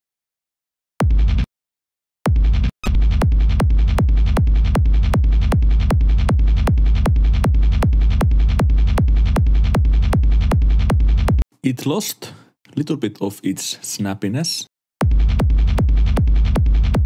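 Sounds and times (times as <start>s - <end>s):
distorted kick drum looping: 2.3s - 11.4s, 15.0s - 17.0s.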